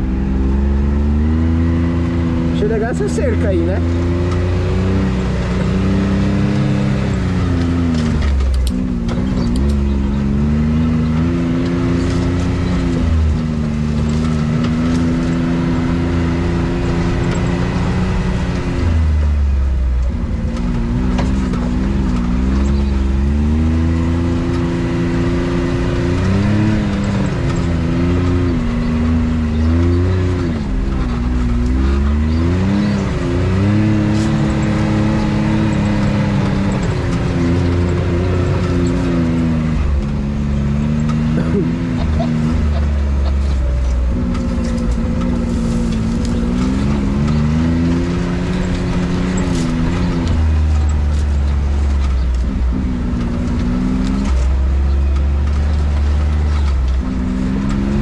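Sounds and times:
engine revving: 0.0 - 58.0.

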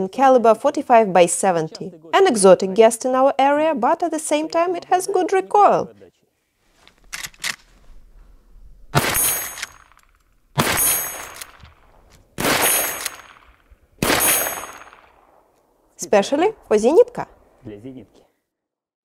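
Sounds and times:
rifle lever being worked: 6.8 - 7.7, 9.0 - 12.2
rifle shots with echo: 8.9 - 10.0, 10.6 - 17.6.

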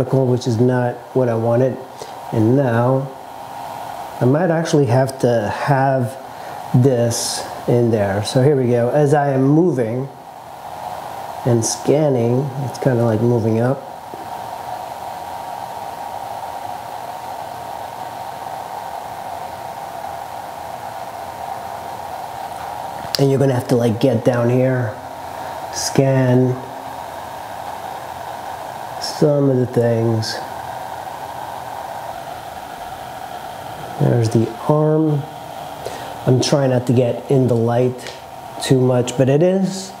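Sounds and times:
fan whirring hiss: 0.0 - 40.0
steady rushing noise: 0.0 - 40.0.

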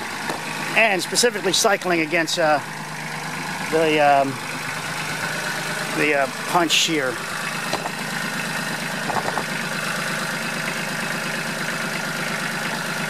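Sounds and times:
backhoe engine idling: 0.0 - 13.0.

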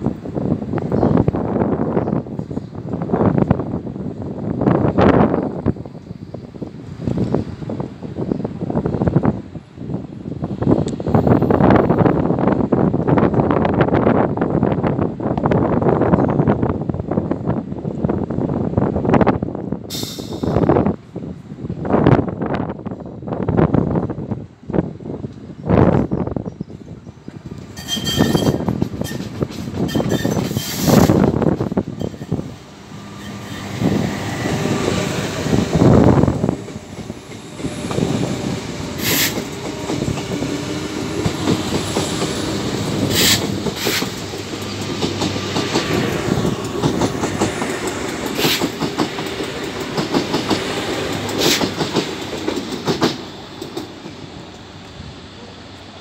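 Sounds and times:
heavy train rumbling: 0.0 - 56.0
high wheel squeaks: 26.4 - 32.5, 33.1 - 34.1
train wheels clattering over rail joints: 27.3 - 54.7.

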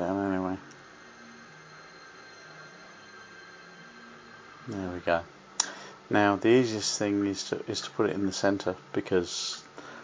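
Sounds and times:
weak low hum: 0.0 - 10.0.

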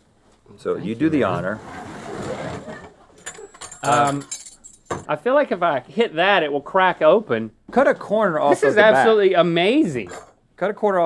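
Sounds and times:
metal tableware clinking: 3.2 - 5.1.

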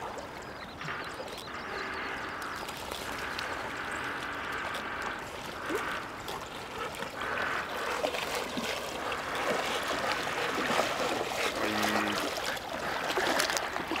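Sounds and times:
dogs splashing through water: 0.0 - 14.0.

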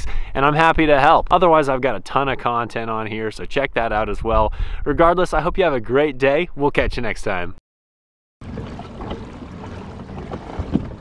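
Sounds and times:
wind buffeting microphone: 3.5 - 5.8, 8.4 - 11.0
knock on hull: 8.4 - 11.0
water lapping against hull: 8.4 - 11.0.

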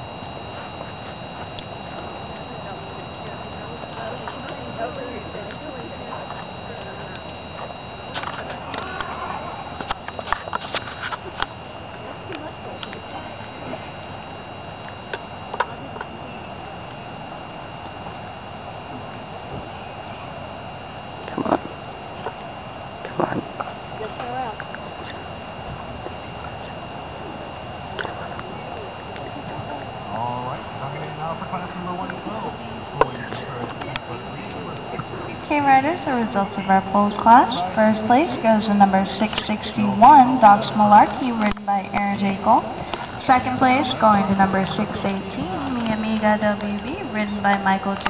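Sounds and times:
faint high-pitched whine: 0.0 - 48.0
indistinct voices: 0.0 - 48.0
steady background noise: 0.0 - 48.0.

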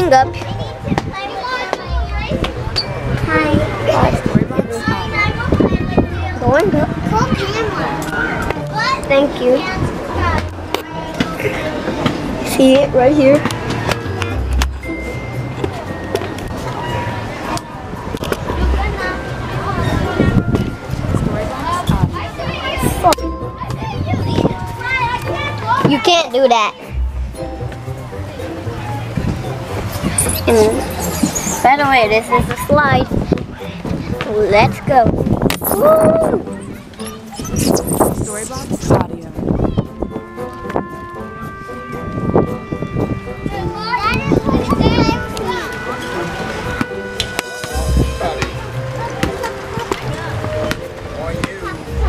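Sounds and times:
music with held notes: 0.0 - 37.6, 39.1 - 52.0
children's voices playing: 0.0 - 52.0.

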